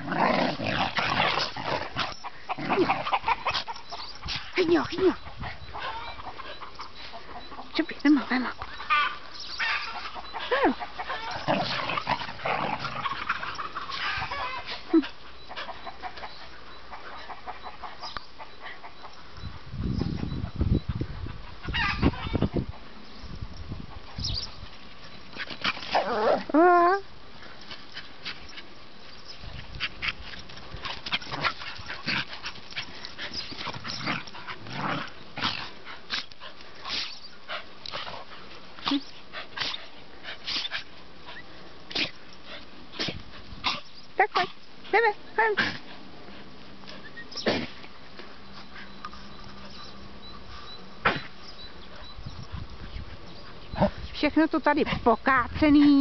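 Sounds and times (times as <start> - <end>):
dog yelping: 2.1 - 6.6, 8.8 - 11.8, 13.5 - 15.0, 21.7 - 22.5
dogs scuffling: 27.4 - 39.8.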